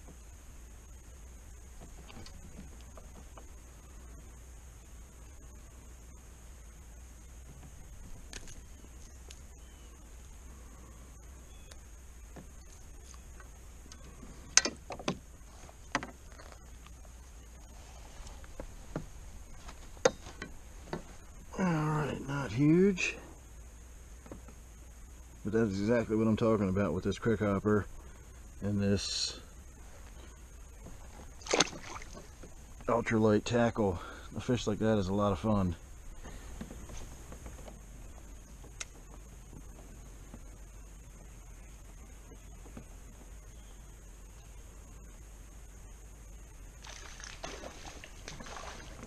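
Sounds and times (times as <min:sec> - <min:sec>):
faint low hum: 0:00.0 - 0:49.0
fish splashing at the surface: 0:31.4 - 0:32.3, 0:46.8 - 0:49.0.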